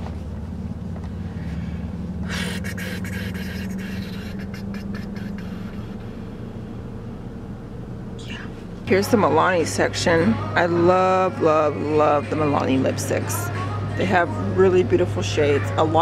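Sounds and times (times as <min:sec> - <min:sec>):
car idling hum: 0:00.0 - 0:16.0.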